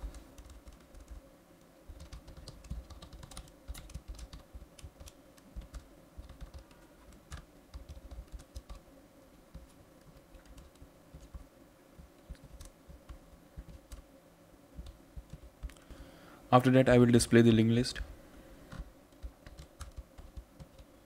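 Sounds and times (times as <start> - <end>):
computer keyboard typing: 0.0 - 1.2, 1.9 - 8.8, 9.5 - 11.4, 12.1 - 14.0, 14.8 - 15.9, 18.7 - 20.9
steady hum: 0.0 - 21.0.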